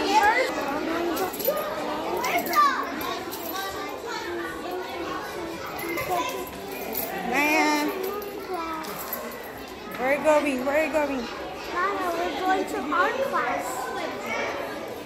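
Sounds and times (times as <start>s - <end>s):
young children chattering: 0.0s - 15.0s.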